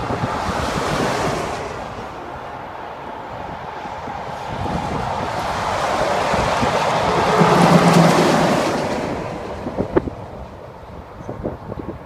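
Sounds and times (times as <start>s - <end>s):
highway traffic passing: 0.0s - 12.0s
wind on microphone: 0.0s - 12.0s.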